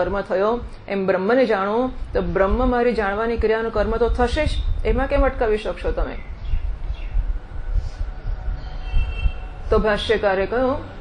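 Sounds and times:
low uneven rumble: 1.9s - 11.0s.

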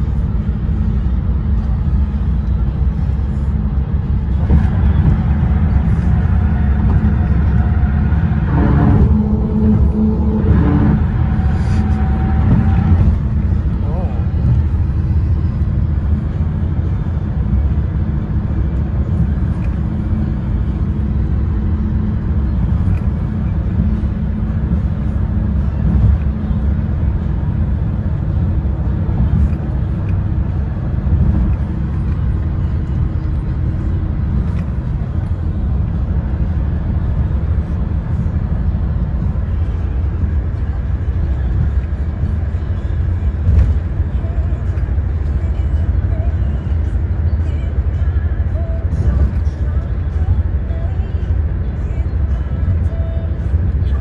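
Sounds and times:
car cabin tyre and engine rumble: 0.0s - 54.0s.

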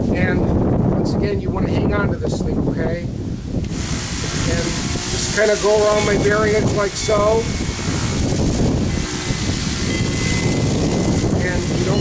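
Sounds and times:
electric buffer motor drone: 3.6s - 12.0s.

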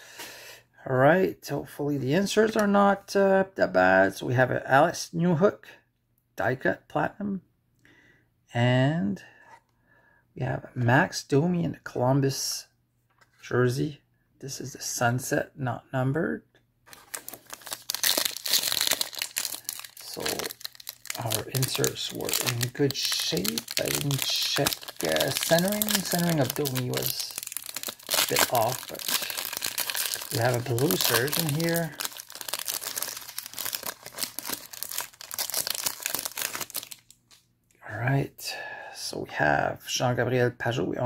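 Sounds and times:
foil wrapper crinkling: 16.9s - 37.4s.

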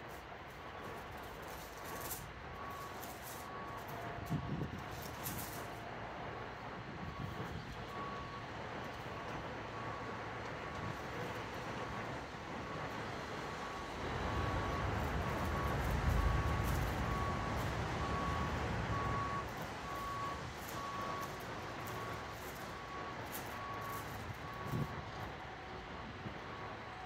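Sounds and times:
vehicle rumble: 0.0s - 27.0s
faint short beeps: 0.7s - 6.4s, 7.0s - 11.4s, 13.6s - 27.0s.

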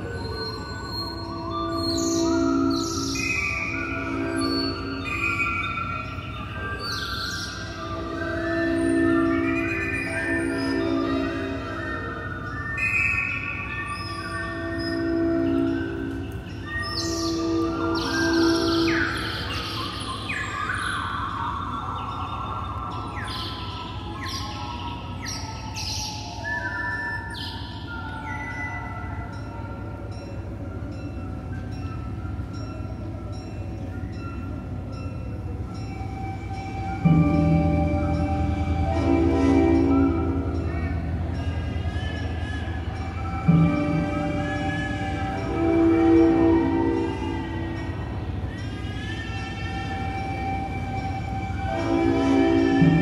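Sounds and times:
contemporary ensemble music: 0.0s - 53.0s.

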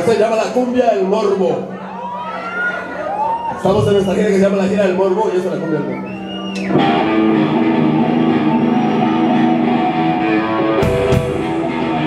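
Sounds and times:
live band playing: 5.6s - 12.0s
electric guitar chords ringing: 6.6s - 12.0s
upright bass: 6.8s - 12.0s.

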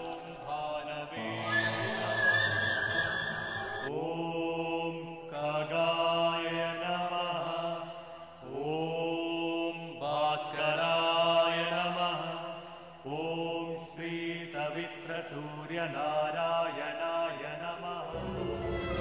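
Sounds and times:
low drone: 0.0s - 3.9s
chanted vocal phrases: 0.0s - 18.2s.

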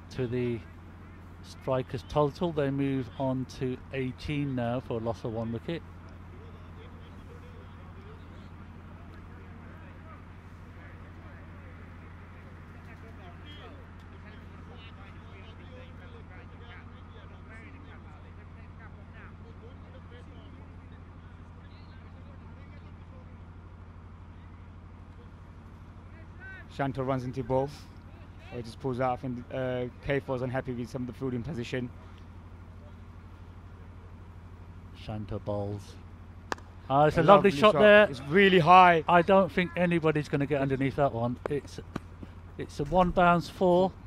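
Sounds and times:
distant voices calling: 0.0s - 44.0s.

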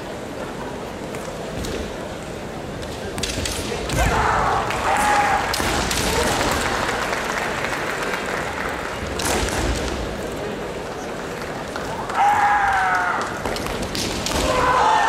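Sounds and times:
fencers shouting: 3.9s - 6.4s, 14.3s - 15.0s.

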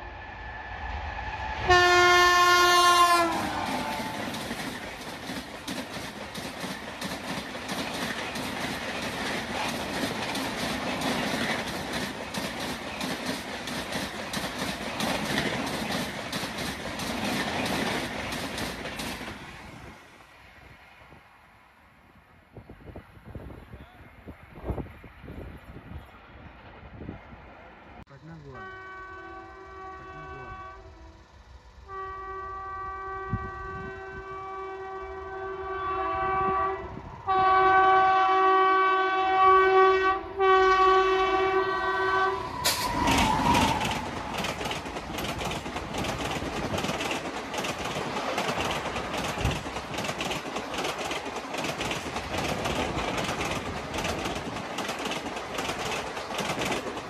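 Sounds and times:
locomotive passing rush: 0.0s - 28.6s, 32.7s - 57.0s
locomotive air horn blasts: 1.6s - 4.3s, 28.4s - 43.0s
train wheels clickety-clack: 3.0s - 20.0s, 42.5s - 57.0s.

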